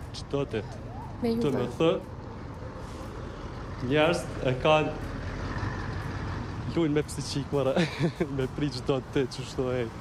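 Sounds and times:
bus engine rumbling: 0.0s - 10.0s.

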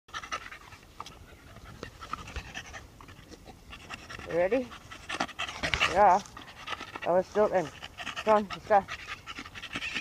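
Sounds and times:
dog panting: 0.1s - 10.0s.

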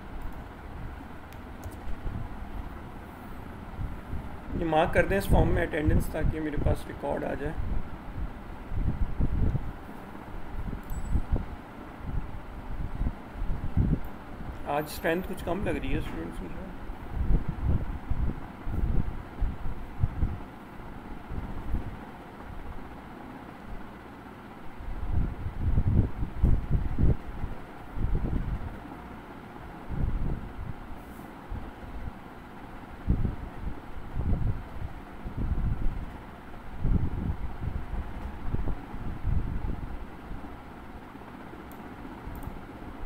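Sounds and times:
wind gusts on microphone: 7.6s - 9.8s, 10.4s - 14.6s, 16.8s - 20.5s, 24.9s - 28.8s, 29.9s - 32.2s, 33.0s - 36.1s, 36.7s - 40.0s.

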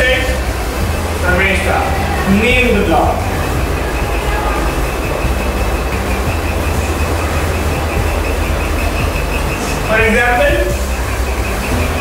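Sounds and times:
low hum: 0.0s - 12.0s
pulsing high whine: 0.0s - 12.0s.

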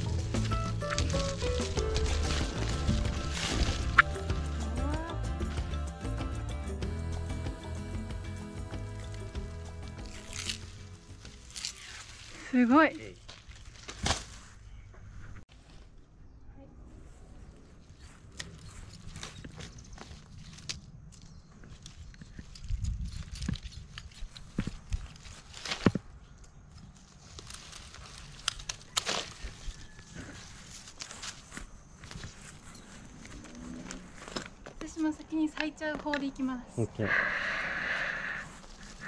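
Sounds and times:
stiff leaflets rustling: 0.0s - 6.1s, 8.8s - 14.9s, 17.4s - 34.8s, 38.3s - 39.0s
palm frond cracking as split: 0.4s - 4.2s, 10.0s - 12.5s, 13.2s - 14.4s, 21.9s - 31.6s.

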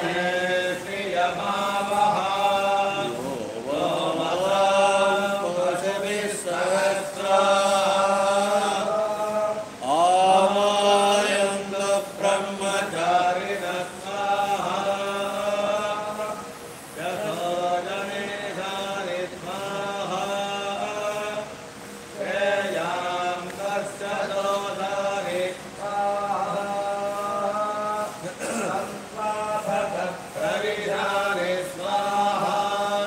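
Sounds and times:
men chanting mantras: 0.0s - 33.0s
steady low hum: 0.0s - 33.0s.

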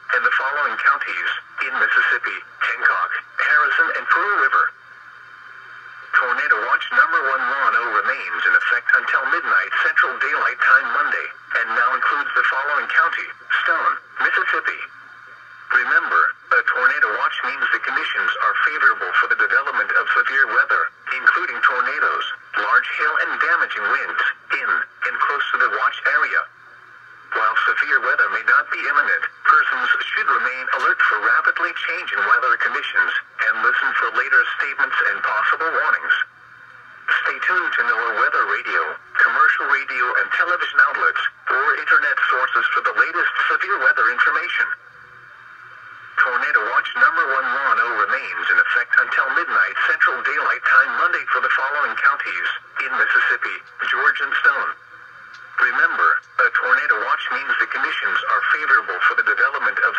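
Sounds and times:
automated voice through small speaker: 0.0s - 4.9s, 5.8s - 59.9s.

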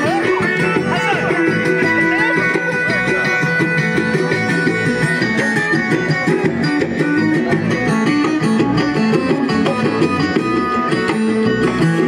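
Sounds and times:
amplified band with plucked guitars: 0.0s - 12.0s.

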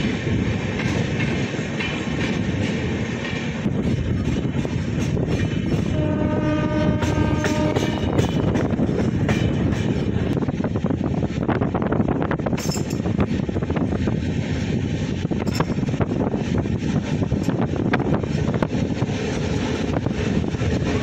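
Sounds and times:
train rumbling with wheel clicks: 0.0s - 21.0s
train horn: 5.8s - 8.4s.

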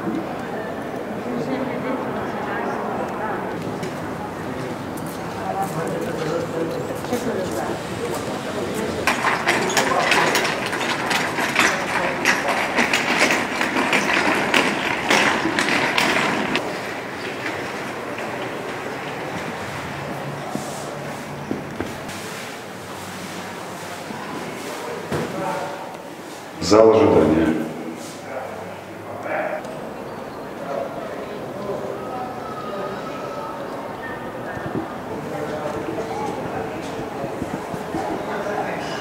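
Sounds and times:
indistinct voices: 0.0s - 22.7s, 23.7s - 39.0s
clicks and knocks: 9.0s - 20.2s.

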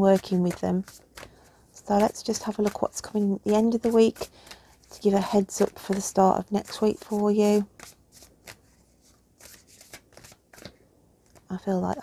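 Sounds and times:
cards being shuffled: 0.2s - 11.5s.

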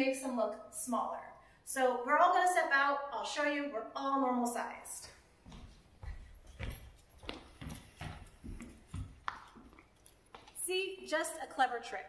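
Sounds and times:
footsteps on hard floor: 5.4s - 10.6s.

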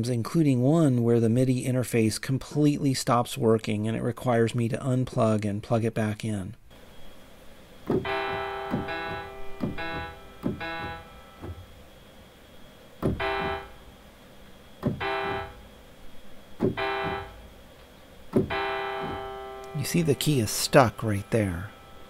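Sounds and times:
piano notes: 8.0s - 11.7s, 13.1s - 13.8s, 14.9s - 15.7s, 16.6s - 17.6s, 18.4s - 22.0s.

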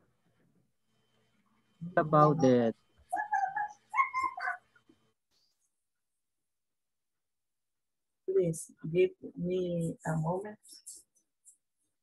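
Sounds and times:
high-pitched whimpering calls: 3.1s - 4.8s.

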